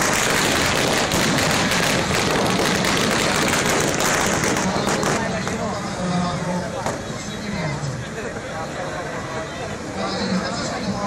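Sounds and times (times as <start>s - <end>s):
fireworks crackling and hissing: 0.0s - 6.0s.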